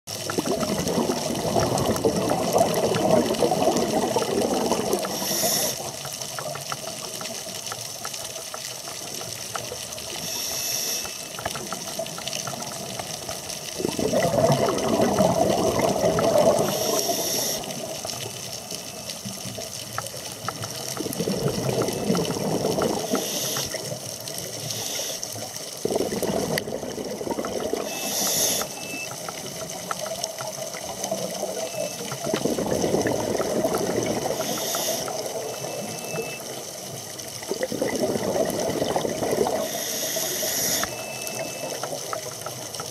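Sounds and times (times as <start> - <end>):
exhaust bubbles bubbling: 0.1 - 6.2, 11.6 - 18.4, 20.8 - 24.0, 25.6 - 42.9
regulator inhale hiss: 5.0 - 6.0, 10.2 - 11.4, 16.6 - 17.8, 23.0 - 24.0, 24.6 - 25.4, 27.9 - 28.8, 34.3 - 35.2, 39.5 - 41.0.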